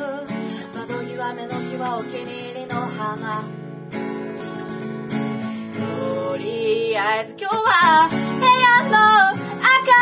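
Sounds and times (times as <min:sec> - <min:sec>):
person singing a ballad: 0:00.0 - 0:04.8, 0:05.5 - 0:10.0
acoustic guitar: 0:00.0 - 0:10.0.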